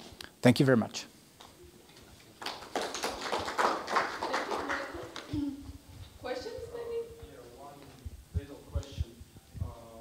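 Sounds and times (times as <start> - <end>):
audience applauding: 2.4 - 5.3.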